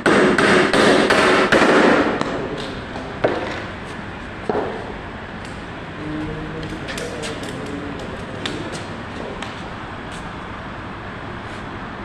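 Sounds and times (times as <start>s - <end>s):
hammer striking timber: 0.0s - 2.4s.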